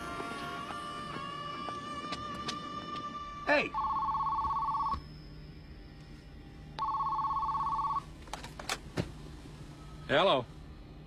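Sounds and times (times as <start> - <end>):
telephone ringing: 3.7 - 5.0, 6.8 - 8.1.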